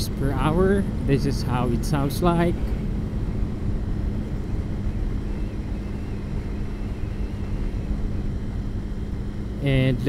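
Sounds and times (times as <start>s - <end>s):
wind rumble: 0.0s - 9.7s
motorcycle engine hum: 0.0s - 10.0s.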